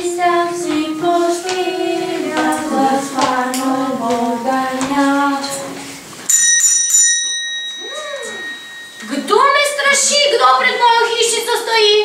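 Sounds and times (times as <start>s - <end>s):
children singing: 0.0s - 5.8s
small bell ringing: 6.3s - 10.4s.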